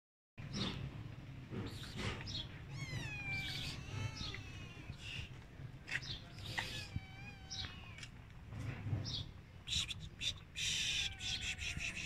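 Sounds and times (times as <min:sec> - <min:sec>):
kitten meowing: 0:02.7 - 0:05.3, 0:06.4 - 0:08.1, 0:10.7 - 0:12.0.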